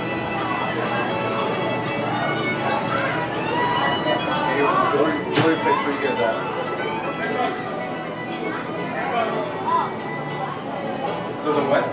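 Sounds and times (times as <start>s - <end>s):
indistinct chatter of people: 0.0s - 11.9s.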